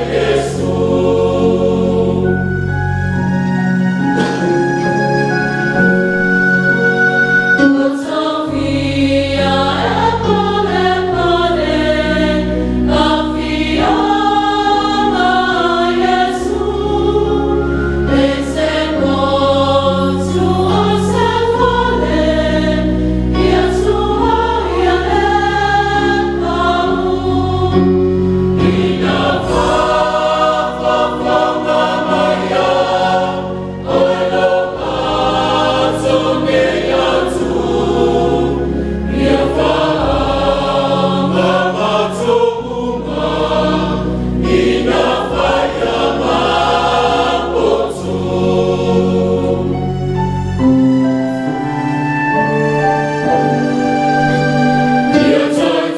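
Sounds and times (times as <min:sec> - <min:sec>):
choir singing a hymn: 0:00.0 - 0:05.0, 0:07.6 - 0:55.9
sustained low bass notes: 0:21.3 - 0:50.5.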